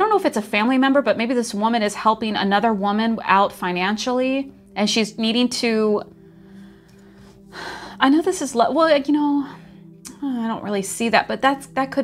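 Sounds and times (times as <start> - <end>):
woman inhaling: 6.1 - 8.0.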